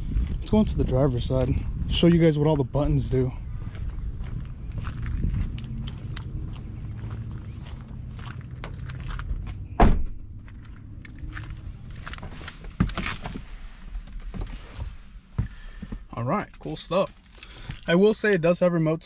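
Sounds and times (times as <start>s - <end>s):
footsteps and scuffing: 3.6s - 9.7s, 10.4s - 16.0s
car door thunk: 9.7s - 10.3s.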